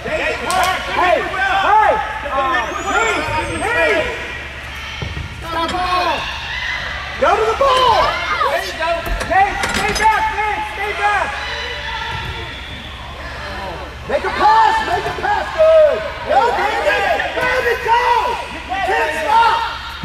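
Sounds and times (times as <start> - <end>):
voices chattering and calling out: 0.0 - 20.0.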